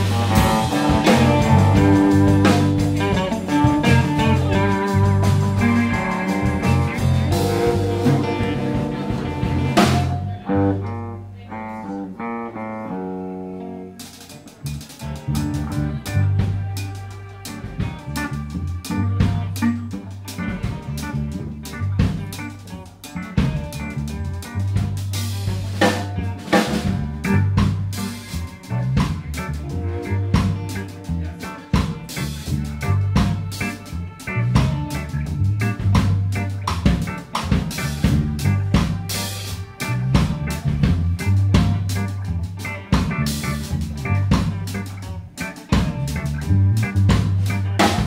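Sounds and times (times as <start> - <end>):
drum kit beat: 0.0 - 11.1, 14.0 - 48.0
electric bass: 0.0 - 48.0
electric guitar: 0.0 - 48.0.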